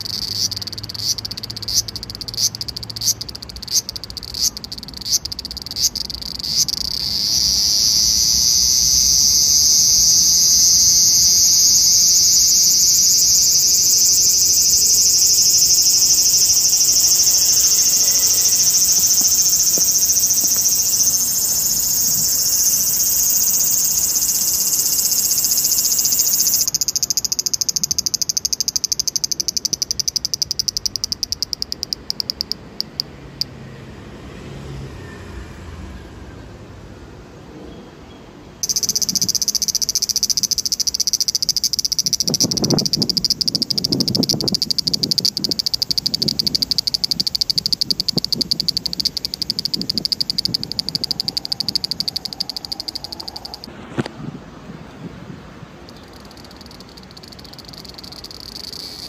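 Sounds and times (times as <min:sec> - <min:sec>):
cicada buzzing: 0:00.0 - 0:33.5, 0:38.6 - 0:53.7, 0:55.8 - 0:59.0.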